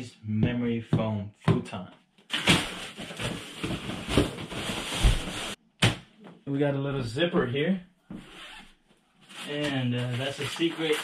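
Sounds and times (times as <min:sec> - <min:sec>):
cardboard and plastic rustling: 0:02.3 - 0:05.6.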